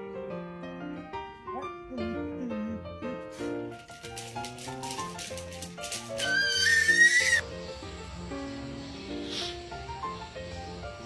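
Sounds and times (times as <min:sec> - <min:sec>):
high animal call: 0:06.1 - 0:07.4.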